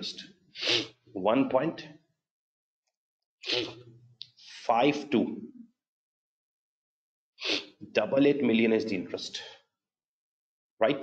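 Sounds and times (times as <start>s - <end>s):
man speaking: 4.5s - 5.5s.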